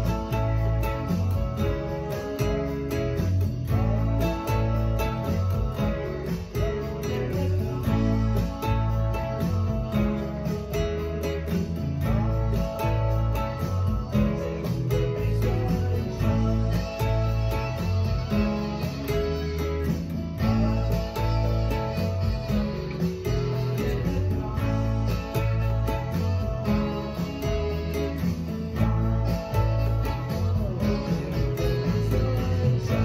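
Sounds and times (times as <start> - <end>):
deep bass line: 0.0 - 33.0
nylon-string guitar strummed: 0.0 - 33.0.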